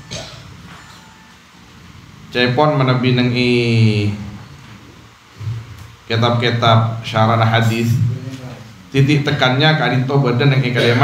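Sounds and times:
man intoning into a microphone: 0:05.5 - 0:09.5, 0:10.4 - 0:11.0.

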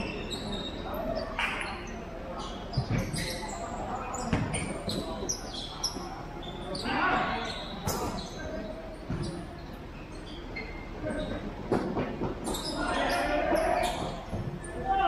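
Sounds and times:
players shouting in a hall: 0:12.6 - 0:15.0.

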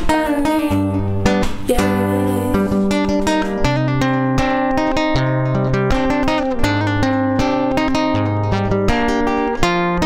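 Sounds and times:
acoustic guitar fingerpicked: 0:00.0 - 0:10.0.

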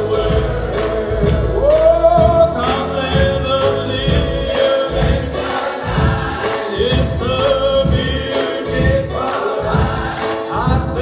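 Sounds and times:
gospel choir singing: 0:00.0 - 0:11.0
steady beat: 0:00.0 - 0:11.0.

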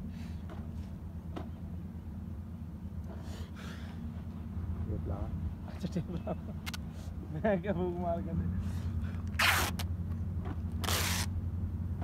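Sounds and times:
steady low hum: 0:00.0 - 0:12.0
masking tape ripping off roll: 0:09.3 - 0:09.9, 0:10.7 - 0:11.4.

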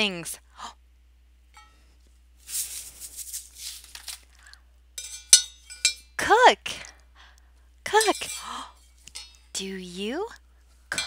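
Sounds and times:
rustling shaking sound: 0:02.4 - 0:04.4
spoon clinking against metal pot: 0:05.0 - 0:06.2, 0:07.9 - 0:09.5.

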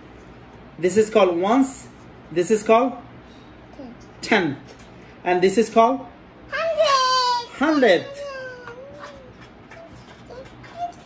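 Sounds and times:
child's drawn-out wordless voice: 0:03.7 - 0:04.1, 0:06.5 - 0:11.0.

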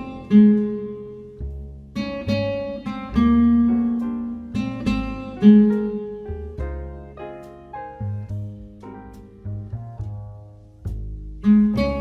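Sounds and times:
backing track piano and bass: 0:00.0 - 0:12.0
classical guitar melody: 0:00.0 - 0:12.0.

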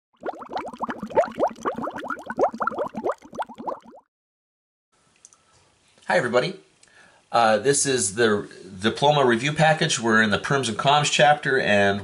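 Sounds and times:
bubbling water plops: 0:00.1 - 0:04.1.

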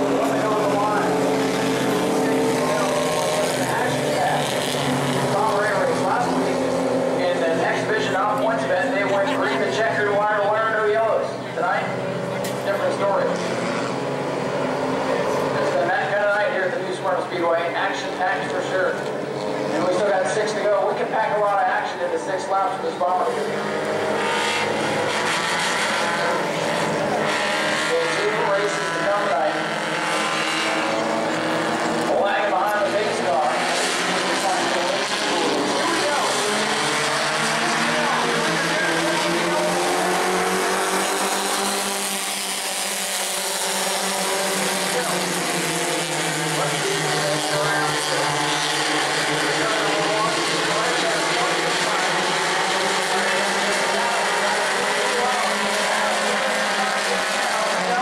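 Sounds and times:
racing car engines: 0:00.0 - 0:58.0.

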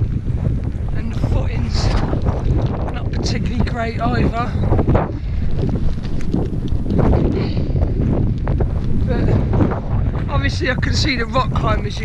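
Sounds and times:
wind buffeting microphone: 0:00.0 - 0:12.0
small clicks and rustles: 0:01.6 - 0:03.7, 0:05.1 - 0:09.4.

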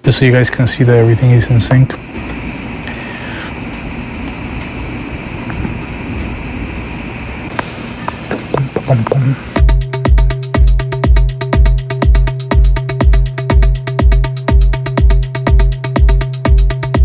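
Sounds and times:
steady hiss: 0:00.0 - 0:17.0
held bass tone: 0:03.9 - 0:17.0
techno beat with kick drum: 0:08.5 - 0:17.0.

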